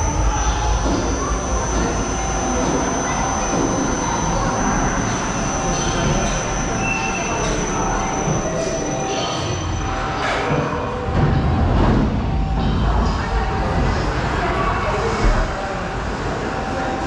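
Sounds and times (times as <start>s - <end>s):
roller coaster rolling rumble: 11.0s - 17.0s.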